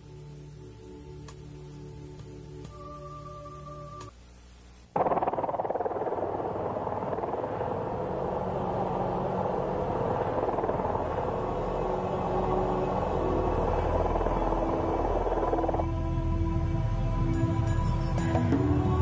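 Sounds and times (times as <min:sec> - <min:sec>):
music with low drone: 0:00.0 - 0:19.0
helicopter rotor chopping: 0:05.0 - 0:16.1.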